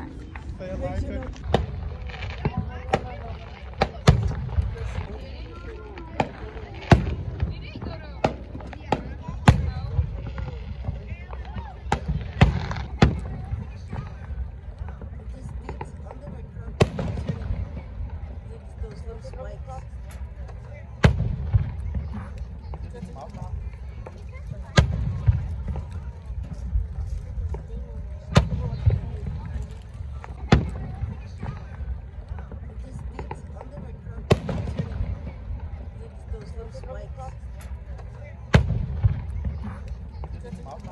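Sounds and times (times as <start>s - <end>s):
firework bang: 0.0s - 5.2s, 30.2s - 35.8s, 38.5s - 40.9s
low rumble: 0.0s - 8.7s
faint firework pops: 0.2s - 40.9s.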